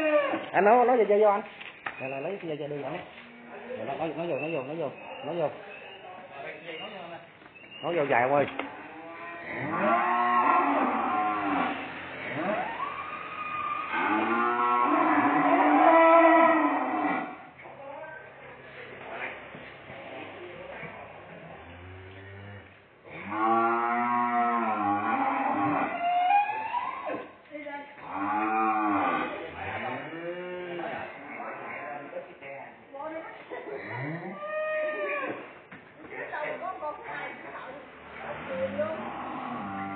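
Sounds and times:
cattle mooing: 8.7 - 17.4, 21.6 - 27.3, 28.0 - 31.8, 38.2 - 39.9.

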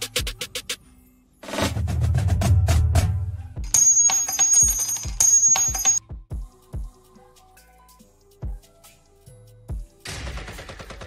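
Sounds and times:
ringing bell-like tone pattern: 3.7 - 6.0.

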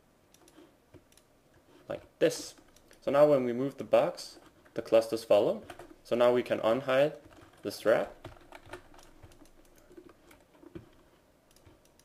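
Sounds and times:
keyboard and mouse clicking: 7.2 - 12.0.

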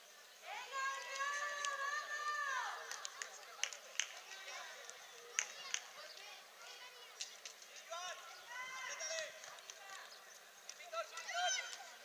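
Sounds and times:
children shouting: 0.5 - 3.4, 7.9 - 9.4, 11.0 - 12.0.

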